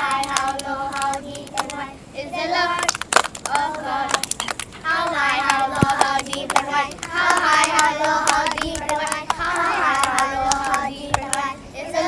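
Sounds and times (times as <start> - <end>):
hand claps: 0.0 - 1.8, 2.8 - 11.5
children singing: 0.0 - 12.0.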